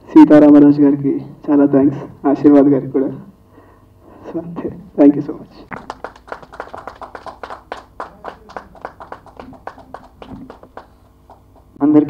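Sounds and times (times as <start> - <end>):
small audience applause: 5.7 - 11.8.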